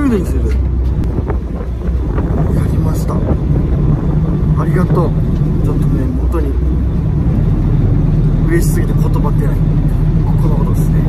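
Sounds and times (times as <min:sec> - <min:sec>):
boat engine droning: 0:00.0 - 0:11.0.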